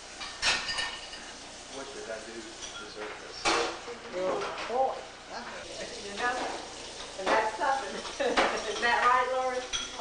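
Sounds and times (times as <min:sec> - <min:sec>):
dishes and cutlery clinking: 0:00.2 - 0:04.8, 0:06.2 - 0:10.0.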